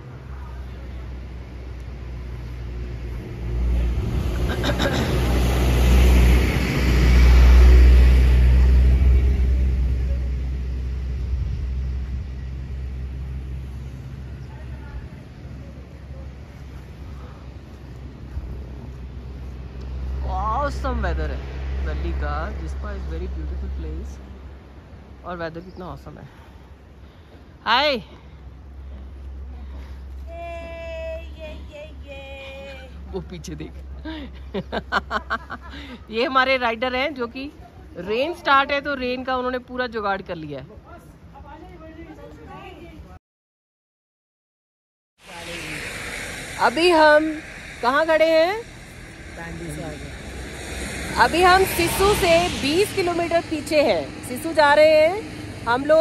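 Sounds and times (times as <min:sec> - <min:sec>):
steady low rumble: 0:00.0 - 0:21.0, 0:45.2 - 0:56.0
vehicle passing: 0:00.0 - 0:25.3, 0:45.2 - 0:56.0
steady low engine hum: 0:45.3 - 0:56.0.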